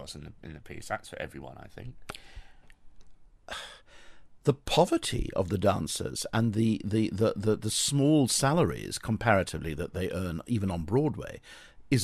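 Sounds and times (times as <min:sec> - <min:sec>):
breathy exhale: 0:02.1 - 0:02.7, 0:03.5 - 0:04.3, 0:11.4 - 0:11.8
intake of breath: 0:02.1 - 0:02.8, 0:03.5 - 0:04.4, 0:11.4 - 0:11.9.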